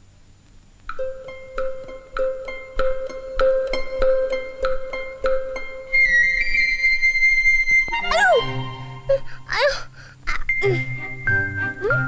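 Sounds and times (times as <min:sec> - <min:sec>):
background music: 0:00.9 - 0:12.0
cartoon child wailing: 0:08.1 - 0:08.5, 0:09.5 - 0:10.8.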